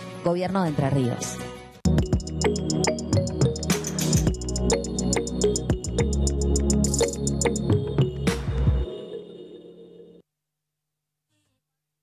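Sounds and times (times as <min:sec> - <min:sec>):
synthesized jingle: 0:02.0 - 0:10.2.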